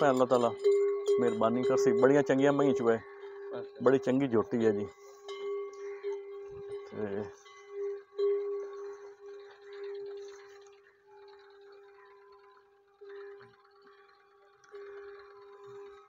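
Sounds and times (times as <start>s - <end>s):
metal neck bell ringing: 0.0s - 10.2s.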